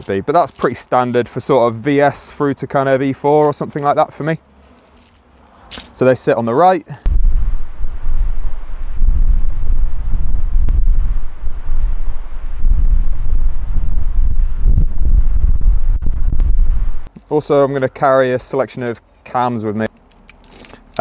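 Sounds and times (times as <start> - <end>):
wind buffeting microphone: 7.0 - 17.1.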